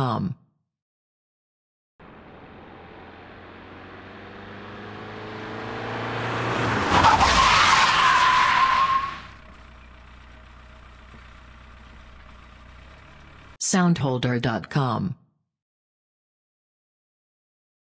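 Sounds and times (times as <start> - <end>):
diesel car engine: 2.0 - 13.6
tyres squealing: 6.8 - 9.8
diesel engine idling: 9.0 - 13.6.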